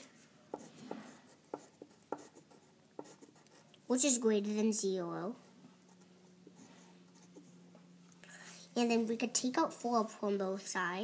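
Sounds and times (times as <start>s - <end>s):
pencil scratching on paper: 0.0s - 3.7s, 5.9s - 7.6s.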